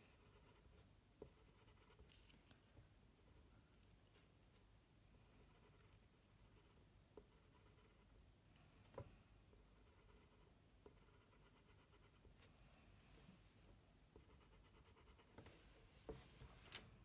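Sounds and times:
pencil scratching on paper: 0.0s - 2.4s, 5.3s - 8.1s, 9.8s - 12.3s, 14.2s - 16.6s.

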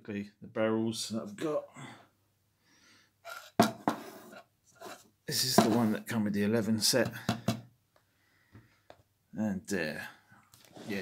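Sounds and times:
soft rubbing: 3.2s - 5.1s, 10.6s - 11.0s
sharp knocks on tabletop: 3.6s - 4.0s, 7.0s - 7.7s.

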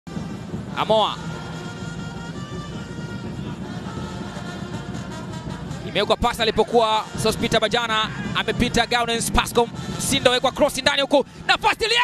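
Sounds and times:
held brass horn notes: 0.1s - 6.0s, 6.7s - 10.8s
music playing: 0.1s - 12.0s
stadium crowd din: 0.1s - 12.0s.

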